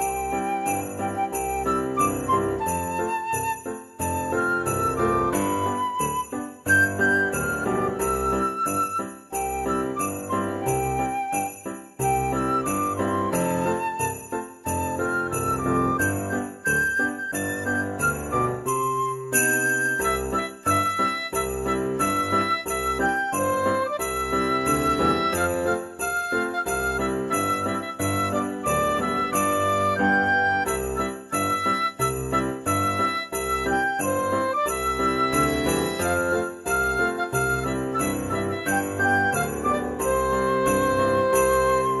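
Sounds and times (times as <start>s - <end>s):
christmas music with jingle bells: 0.0s - 42.0s.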